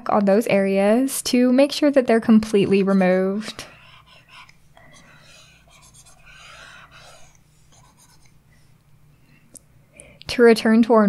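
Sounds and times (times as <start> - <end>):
stylus scratching on pad: 3.5 - 8.4.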